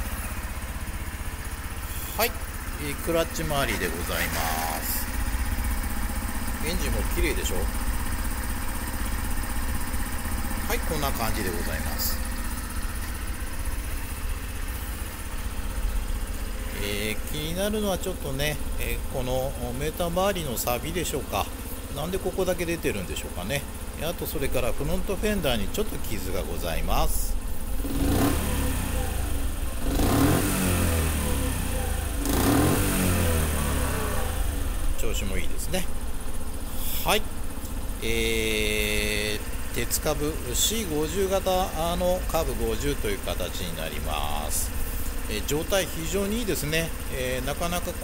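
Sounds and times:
motorcycle engine idling: 0.0 - 48.0.

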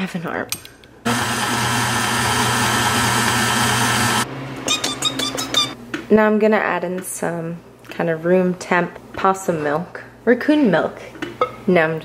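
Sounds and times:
stand mixer motor running: 1.1 - 4.3.

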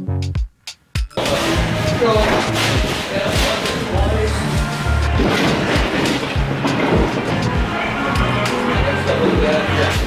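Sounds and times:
background music with low thumps: 0.0 - 10.0.

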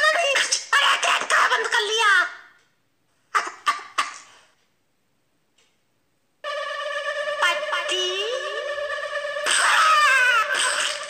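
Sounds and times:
harsh noise bursts: 9.2 - 11.0.

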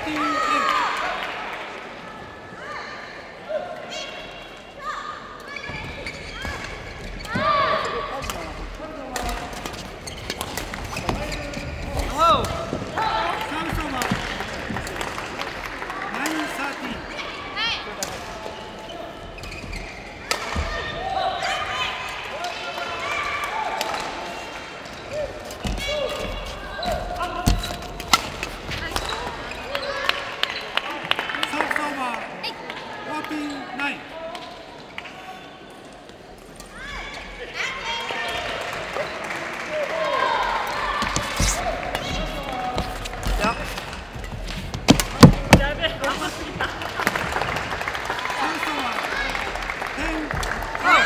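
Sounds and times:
voices in a hall: 0.0 - 51.0
court shoes squeaking: 5.4 - 12.9, 17.9 - 20.9, 23.8 - 30.8, 40.7 - 46.3.

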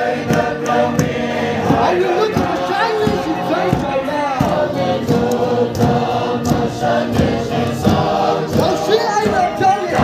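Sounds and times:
group singing a hymn: 0.0 - 10.0.

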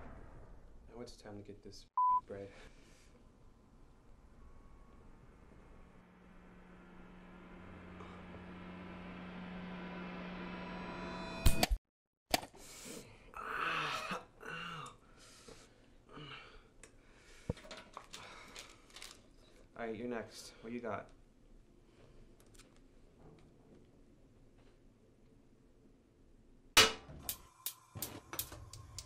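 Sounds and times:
low steady hum: 2.2 - 11.4
rising swell: 4.2 - 11.5
man groaning: 13.4 - 15.0.

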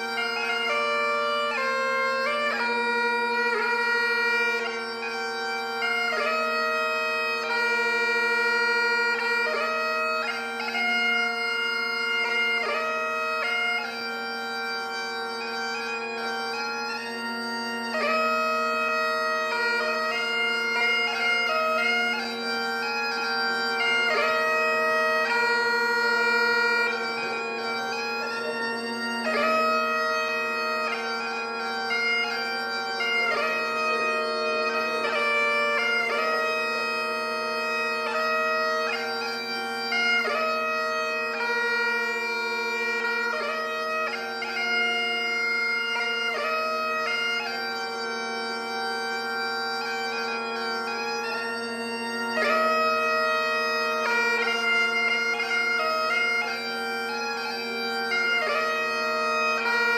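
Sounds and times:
bagpipe chanter melody: 0.0 - 59.9
bagpipe drones: 0.0 - 59.9.

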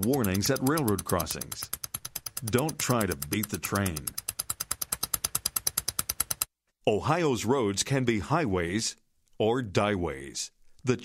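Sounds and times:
rapid even clicking: 0.0 - 6.5.

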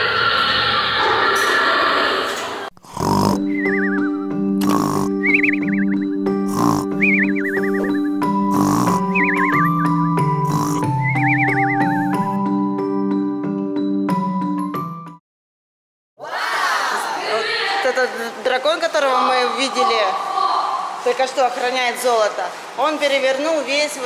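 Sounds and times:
cartoon snoring with whistle: 2.8 - 12.4
soft background music: 3.0 - 13.2.

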